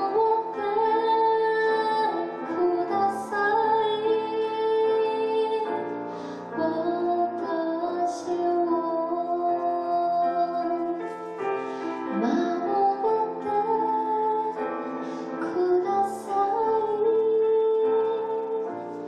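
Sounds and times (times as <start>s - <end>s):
woman singing: 0.0s - 11.4s, 12.0s - 19.0s
grand piano chords: 0.0s - 19.0s.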